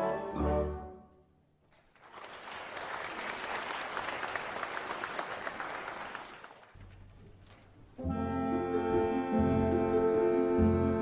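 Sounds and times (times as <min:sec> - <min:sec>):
audience applauding: 0:01.8 - 0:06.9.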